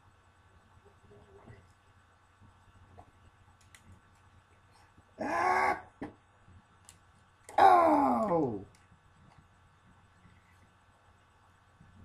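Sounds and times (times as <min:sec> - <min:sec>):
loud vocal cry: 0:05.2 - 0:06.0, 0:07.5 - 0:08.7.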